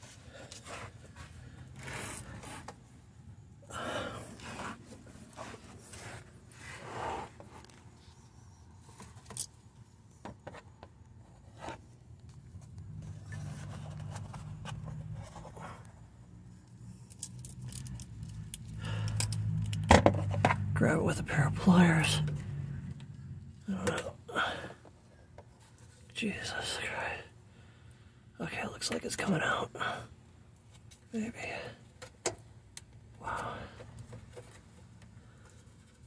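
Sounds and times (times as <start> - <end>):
hands scraping and clicking on wire: 16.6 - 20.8.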